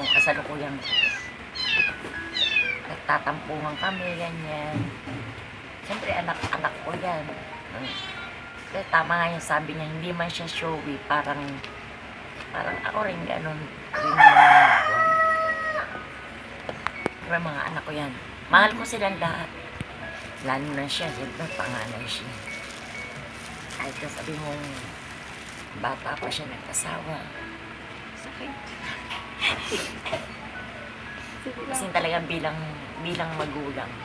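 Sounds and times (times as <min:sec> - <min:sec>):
cat mewing: 0:00.0 - 0:02.9, 0:03.7 - 0:04.4, 0:07.8 - 0:08.3
rooster crowing: 0:13.9 - 0:16.1.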